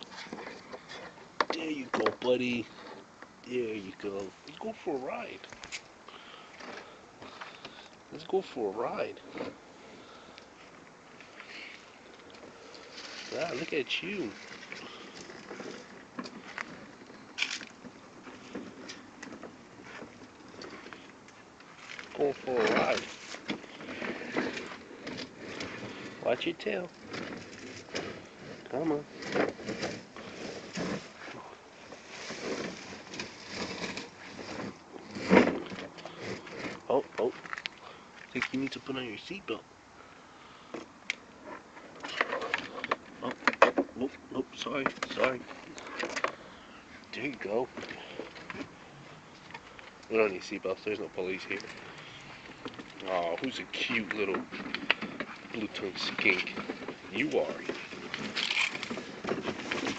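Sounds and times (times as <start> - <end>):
plastic toy car rolling on asphalt: 0.0 - 10.4, 11.3 - 37.7, 40.6 - 59.9
scrapes and rustling: 0.0 - 59.9.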